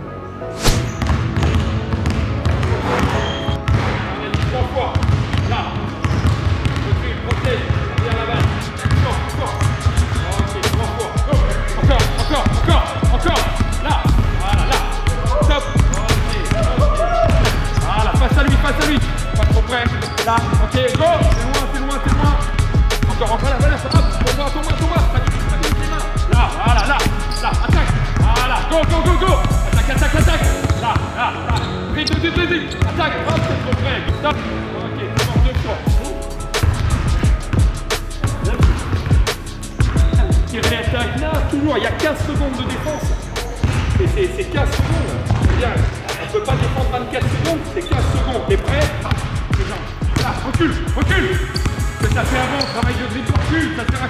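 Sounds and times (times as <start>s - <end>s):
music playing: 0.0s - 54.0s
basketball bouncing on hardwood: 0.6s - 10.1s, 43.6s - 44.0s, 44.8s - 45.6s.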